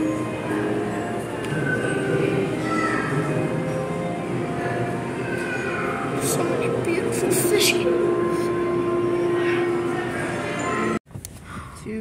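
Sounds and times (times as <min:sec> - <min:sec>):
chatter of visitors: 0:00.0 - 0:11.0.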